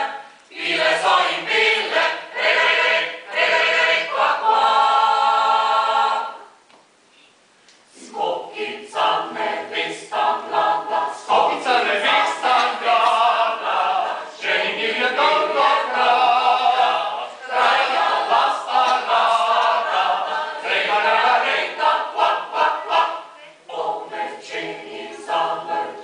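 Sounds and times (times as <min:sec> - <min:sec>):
mixed choir singing a cappella: 0:00.0 - 0:06.6, 0:07.9 - 0:26.0.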